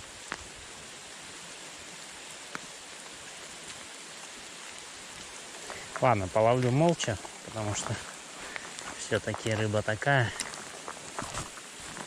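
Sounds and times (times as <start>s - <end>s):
light rain hissing: 0.0s - 12.0s
raindrop ticks: 2.2s - 12.0s.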